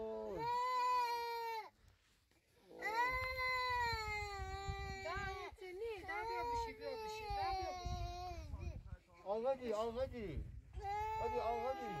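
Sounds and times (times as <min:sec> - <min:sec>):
young child crying: 0:00.3 - 0:01.7, 0:02.8 - 0:05.3, 0:06.1 - 0:08.6, 0:10.8 - 0:12.0.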